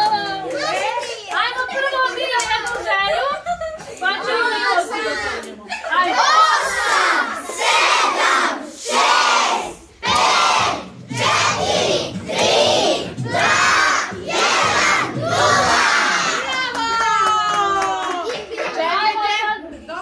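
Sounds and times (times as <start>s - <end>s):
children chanting: 6.1s - 16.4s.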